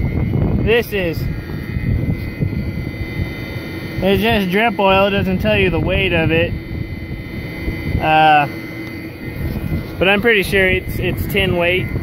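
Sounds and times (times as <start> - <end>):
pump motor droning: 0.0 - 12.0.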